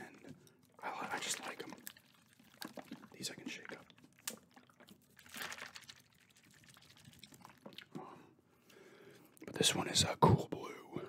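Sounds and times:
liquid sloshing in plastic bottle: 0.0 - 8.0.

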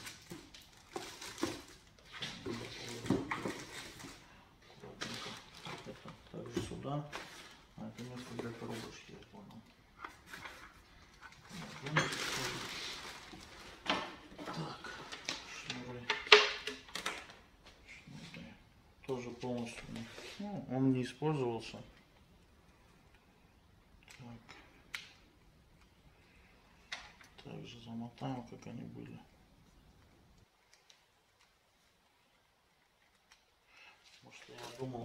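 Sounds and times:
packaging rustling: 0.0 - 16.0.

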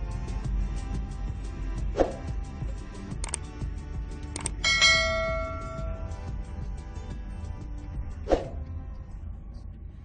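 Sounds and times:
background music: 0.0 - 10.0
short clicks: 3.2 - 3.5, 4.3 - 4.6
bright bell ding: 4.6 - 6.3.

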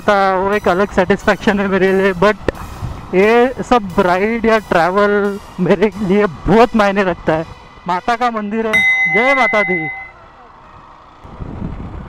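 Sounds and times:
wind and road rumble: 0.0 - 12.0.

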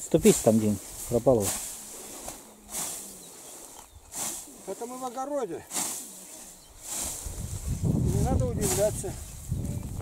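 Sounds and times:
scythe swishing through grass: 0.3 - 9.0.

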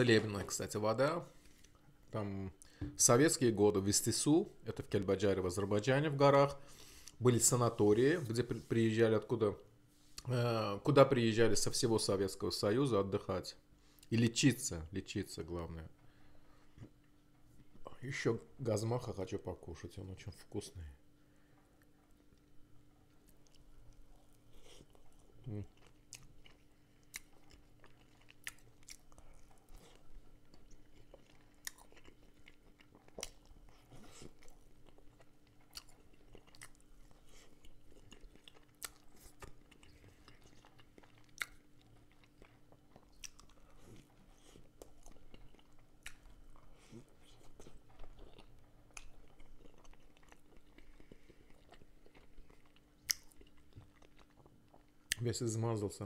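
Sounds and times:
faint steady hum: 0.0 - 56.0
crunchy chewing: 23.1 - 55.4.

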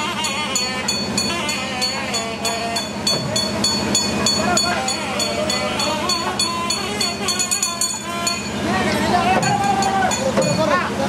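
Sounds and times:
low steady drone: 0.0 - 10.3
metal hand bell ringing: 0.0 - 10.7
wavering melody: 0.0 - 11.0.

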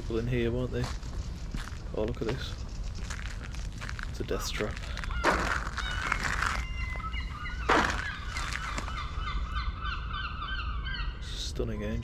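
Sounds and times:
scuffing noises: 0.8 - 7.1, 7.7 - 8.9
birds honking: 3.9 - 11.3.

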